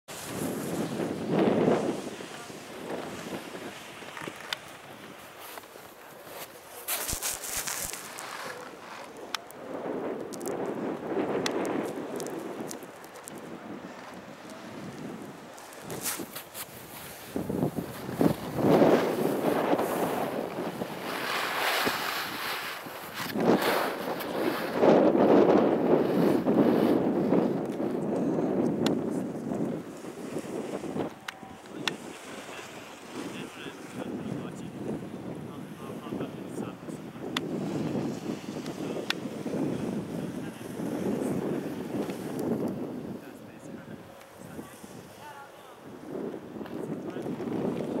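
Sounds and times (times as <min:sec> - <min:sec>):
skis sliding on snow: 0:00.1 - 0:48.0
wind on microphone: 0:00.1 - 0:48.0.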